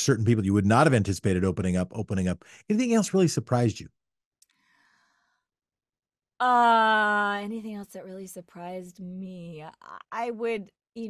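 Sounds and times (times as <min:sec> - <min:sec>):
person drawing breath: 0:04.5 - 0:05.4.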